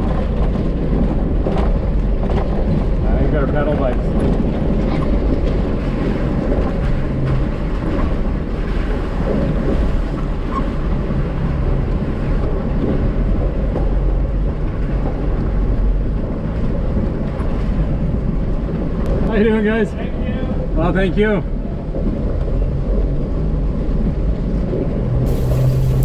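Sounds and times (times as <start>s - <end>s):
car engine at low speed: 0.0s - 26.0s
tyres rolling over gravel: 25.3s - 26.0s.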